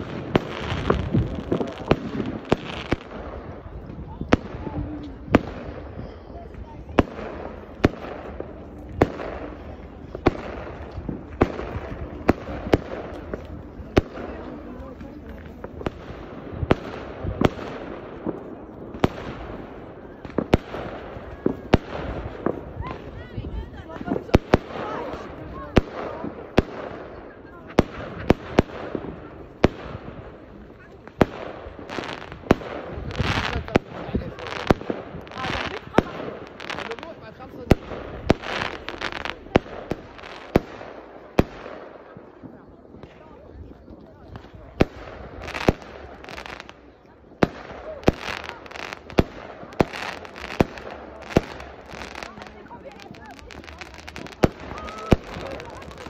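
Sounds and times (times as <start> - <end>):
fireworks bangs: 0.0 - 56.0
fireworks noisy bursts: 0.0 - 56.0.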